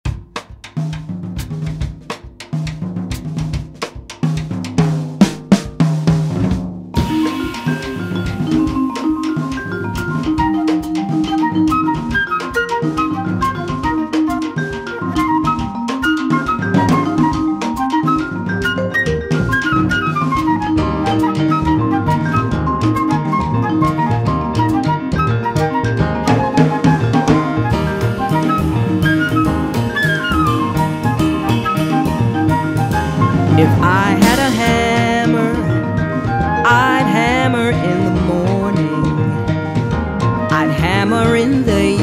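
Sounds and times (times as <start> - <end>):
jazz band held notes: 0.1 - 42.0
snare and bass drum hits: 26.0 - 35.9
low bass line: 27.6 - 42.0.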